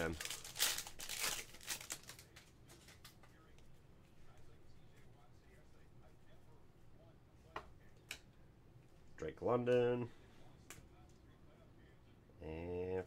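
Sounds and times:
foil wrapper tearing and crinkling: 0.0 - 2.4
faint handling of cards: 0.0 - 6.6.

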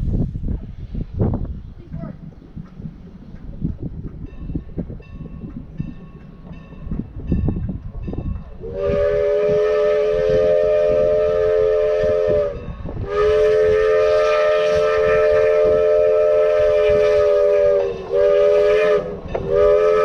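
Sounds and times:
low rumble of approaching train: 0.0 - 20.0
steam locomotive whistle: 8.5 - 20.0.

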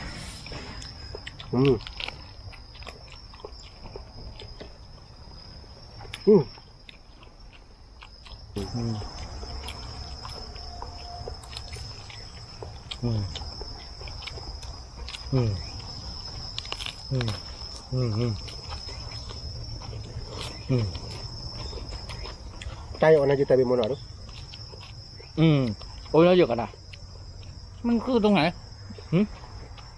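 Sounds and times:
insects droning: 0.0 - 29.9
crisp chewing clicks: 0.8 - 27.8.

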